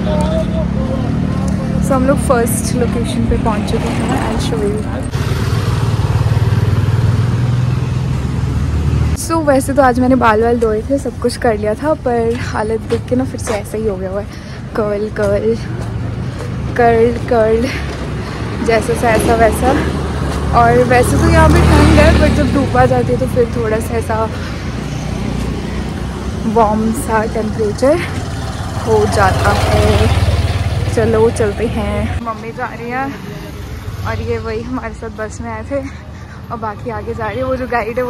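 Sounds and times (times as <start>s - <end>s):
motorcycle engine running: 0.0s - 9.1s, 18.7s - 32.2s
road traffic rumble: 0.0s - 38.0s.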